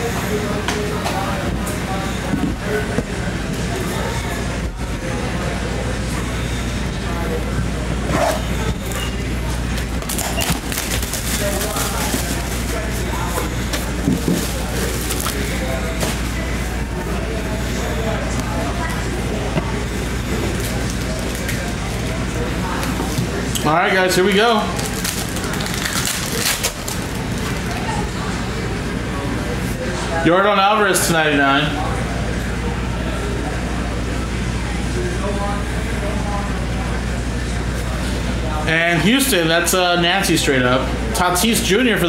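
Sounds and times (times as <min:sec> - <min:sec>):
indistinct background voices: 0:00.0 - 0:30.5
low electrical hum: 0:00.0 - 0:42.0
crinkling of shrink-wrap: 0:09.9 - 0:13.5, 0:24.7 - 0:27.8.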